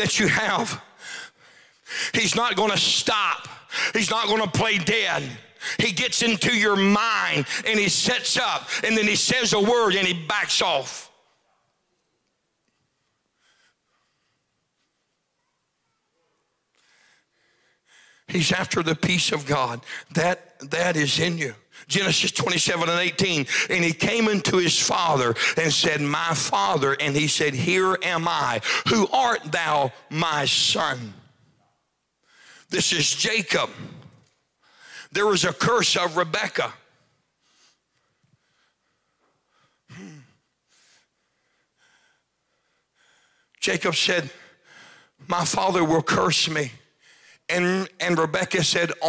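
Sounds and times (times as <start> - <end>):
breaths into a microphone: 0.9 - 2.2, 3.6 - 4.0, 12.7 - 15.0, 16.7 - 18.3, 32.2 - 32.7, 33.8 - 35.1, 36.9 - 43.6, 44.3 - 45.2, 46.9 - 47.5.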